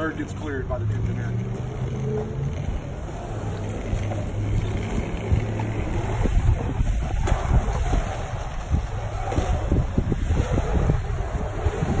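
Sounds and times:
wind buffeting microphone: 1.6 - 12.0.

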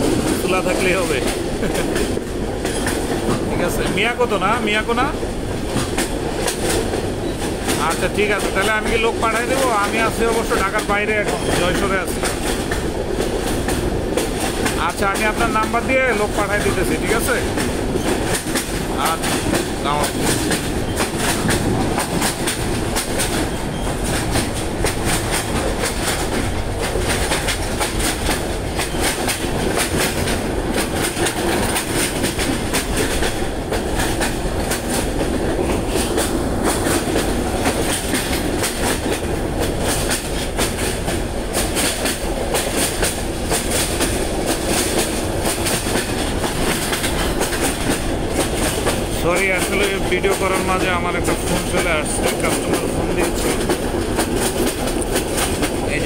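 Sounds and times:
train rumble: 0.0 - 56.0
wheels clicking over rail joints: 0.0 - 56.0.

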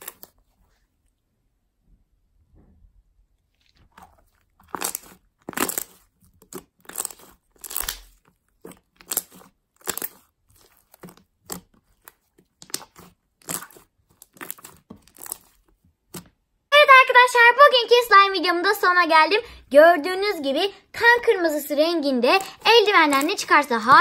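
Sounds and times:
slime squishing: 0.0 - 0.8, 3.4 - 16.5, 19.9 - 24.0.

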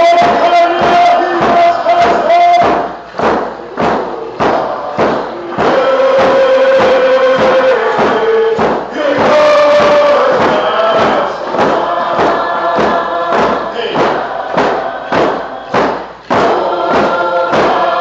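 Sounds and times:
group singing in unison: 0.0 - 18.0
steady drum beat: 0.0 - 18.0.

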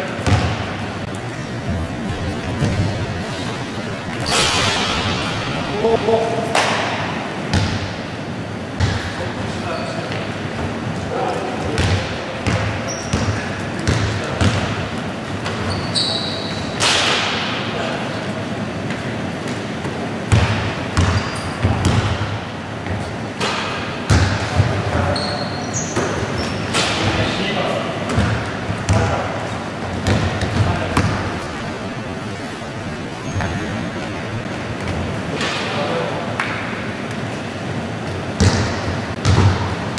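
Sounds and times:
sneakers squeaking: 0.0 - 8.1, 8.8 - 10.9, 11.6 - 16.9, 18.8 - 23.4, 24.0 - 27.4, 28.0 - 35.6, 36.9 - 39.9
basketball bouncing on wooden floor: 0.2 - 0.6, 29.9 - 31.2, 38.4 - 39.7.

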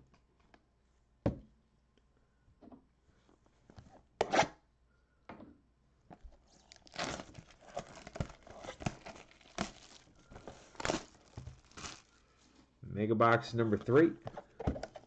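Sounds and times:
plastic shrink-wrap tearing and crinkling: 6.4 - 12.2.

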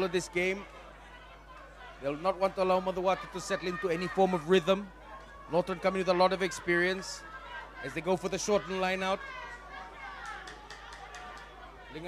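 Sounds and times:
distant shouting and chatter: 0.0 - 12.0.

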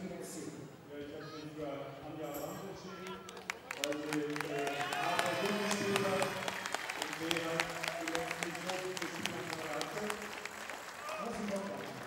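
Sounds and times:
audience clapping: 3.0 - 12.0.

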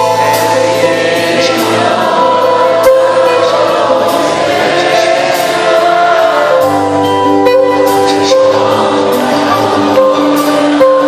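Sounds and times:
keyboards: 0.0 - 11.0
string orchestra: 0.0 - 11.0
man singing: 7.6 - 11.0.

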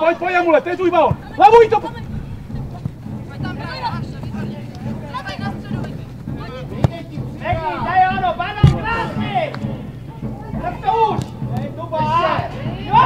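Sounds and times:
people shouting and calling: 0.0 - 13.0
ball being kicked: 2.5 - 9.7.

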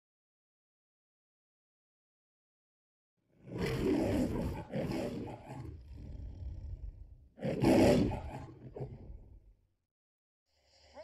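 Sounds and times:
lion roaring: 3.4 - 9.4.

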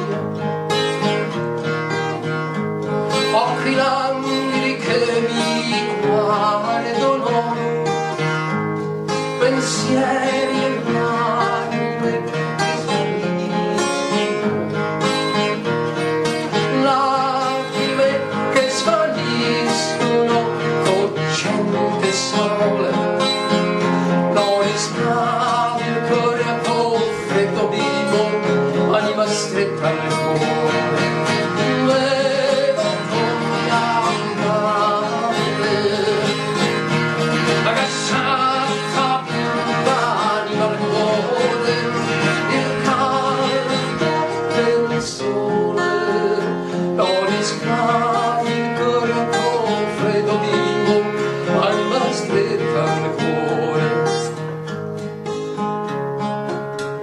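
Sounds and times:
person singing: 0.0 - 1.3, 3.1 - 8.4, 9.1 - 54.6
acoustic guitar: 0.0 - 57.0.

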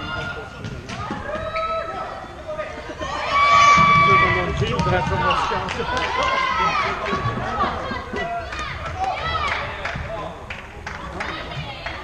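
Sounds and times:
running feet on court floor: 3.7 - 10.3.

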